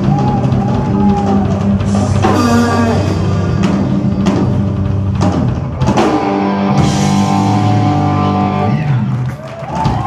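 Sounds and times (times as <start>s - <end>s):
blues-rock band playing: 0.0s - 10.0s.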